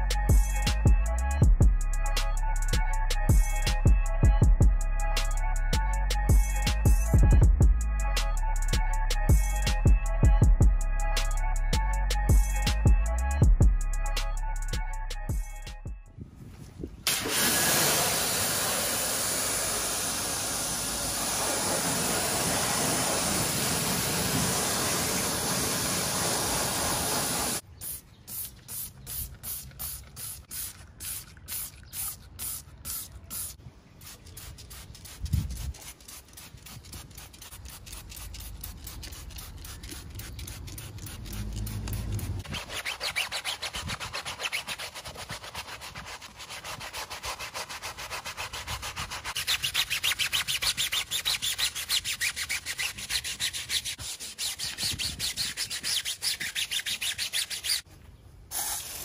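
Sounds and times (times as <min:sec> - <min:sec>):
brush scrubbing rubber tyre: 0:17.1 - 0:27.6, 0:29.4 - 0:57.9
pressure washer spray: 0:17.1 - 0:42.4, 0:58.5 - 0:59.0.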